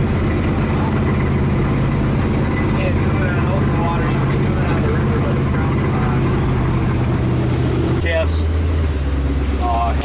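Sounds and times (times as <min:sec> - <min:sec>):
motorboat engine droning: 0:00.0 - 0:10.0.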